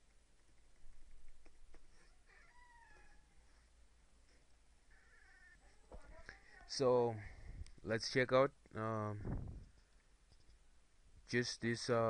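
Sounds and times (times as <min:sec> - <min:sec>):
faint falling animal calls: 0:01.9 - 0:03.7, 0:04.9 - 0:06.2.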